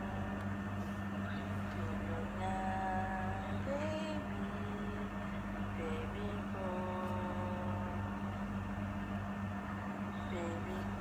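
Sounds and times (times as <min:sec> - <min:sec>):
low mechanical hum with hiss: 0:00.0 - 0:11.0.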